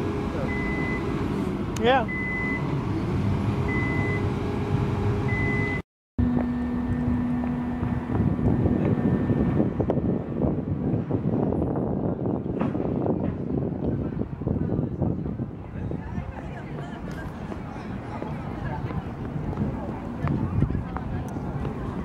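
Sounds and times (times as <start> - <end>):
truck reversing alarm beeping: 0.2 - 1.3, 2.0 - 2.9, 3.6 - 4.4, 5.2 - 5.8
low hum: 2.2 - 12.4.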